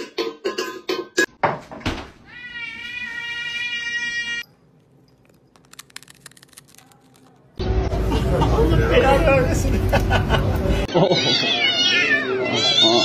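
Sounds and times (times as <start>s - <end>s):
cat meowing: 11.2s - 13.0s.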